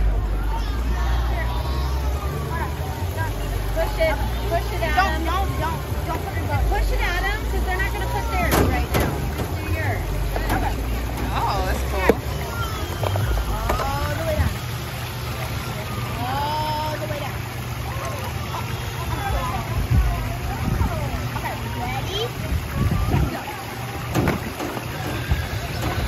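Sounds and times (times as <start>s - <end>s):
children talking and calling out: 0.0s - 26.0s
steady low rumble: 19.3s - 23.3s.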